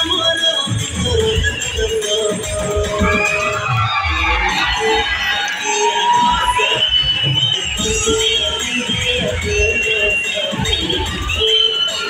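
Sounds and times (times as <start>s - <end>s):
crowd cheering and shouting: 0.0s - 12.0s
loud music with bass beat: 0.0s - 12.0s.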